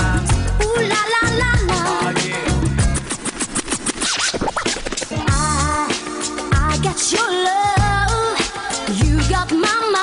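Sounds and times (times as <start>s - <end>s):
record scratching on turntable: 1.8s - 5.4s.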